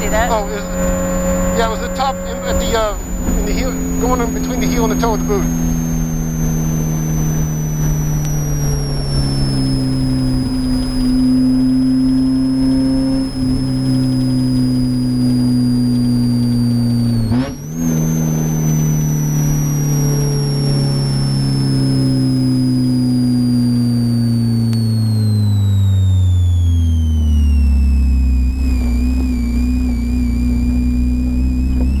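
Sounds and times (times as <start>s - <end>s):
car engine from inside: 0.0s - 32.0s.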